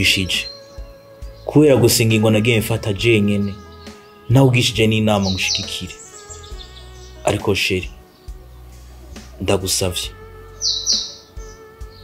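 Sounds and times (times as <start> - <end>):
background music with low notes: 0.0 - 12.0
bird chirping: 0.0 - 12.0.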